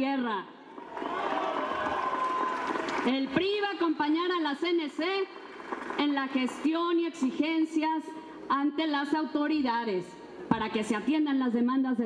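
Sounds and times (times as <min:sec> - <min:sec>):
audience applauding: 0:00.8 - 0:03.3, 0:05.0 - 0:06.1.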